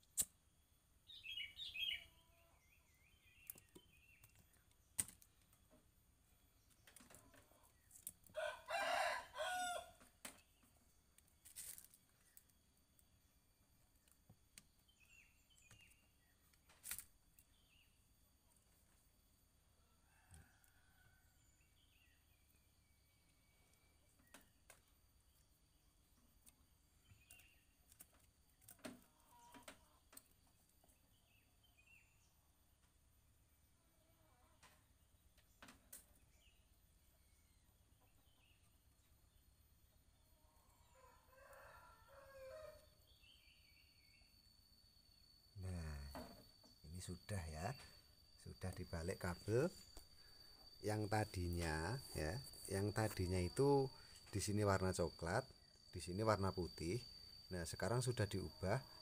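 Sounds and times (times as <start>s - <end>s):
faint bird chirps: 0.0s - 9.8s, 13.8s - 32.9s, 33.6s - 59.0s
rooster crowing: 8.3s - 10.0s, 40.8s - 42.9s.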